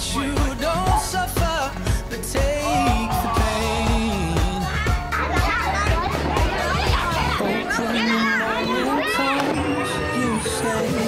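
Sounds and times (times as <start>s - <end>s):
background music with steady beat: 0.0s - 11.0s
children shouting and chattering: 2.4s - 11.0s.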